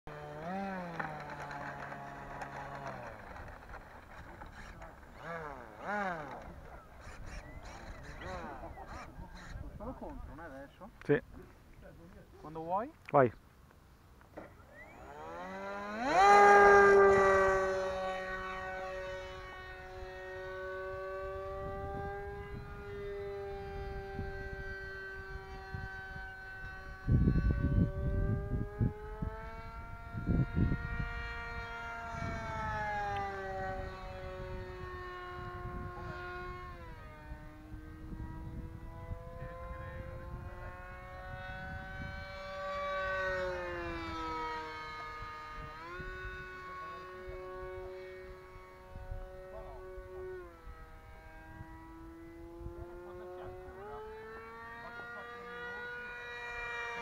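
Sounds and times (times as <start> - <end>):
model plane electric motor whining: 0.1 - 10.7, 14.4 - 57.0.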